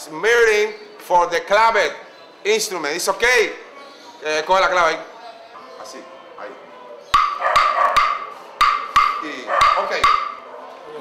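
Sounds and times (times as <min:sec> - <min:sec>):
wooden claves clicking: 0:07.1 - 0:10.4.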